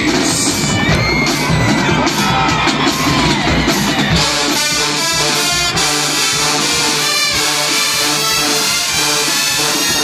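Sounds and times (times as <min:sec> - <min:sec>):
crowd yelling and cheering: 0:00.0 - 0:10.0
marching band drums: 0:00.0 - 0:10.0
brass held chords: 0:04.2 - 0:10.0.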